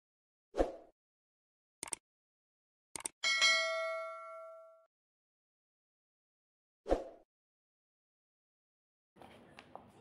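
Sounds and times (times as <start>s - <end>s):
bell chime ringing: 3.2s - 4.9s.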